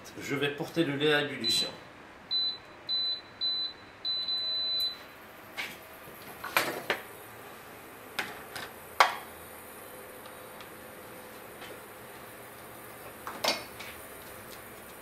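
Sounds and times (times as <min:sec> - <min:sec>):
induction hob beeping: 0:02.3 - 0:05.1.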